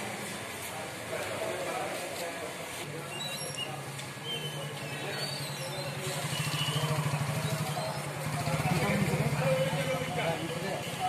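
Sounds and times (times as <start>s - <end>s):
vehicle engine droning: 5.9s - 10.6s.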